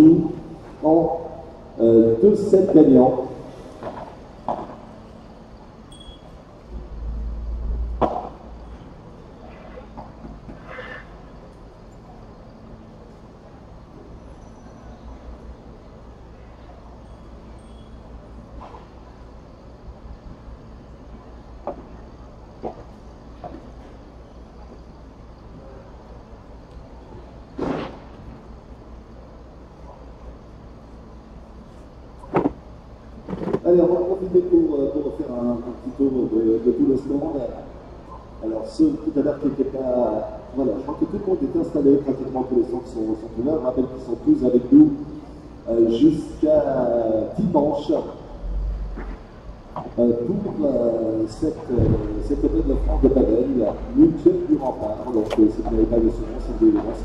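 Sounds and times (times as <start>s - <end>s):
steady low hum: 0.0s - 57.0s
voices talking: 49.9s - 57.0s.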